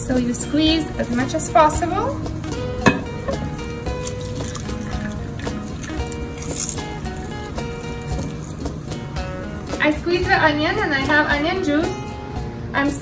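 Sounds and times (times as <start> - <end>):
background music: 0.0 - 13.0
juice dripping into ceramic bowl: 2.4 - 9.8.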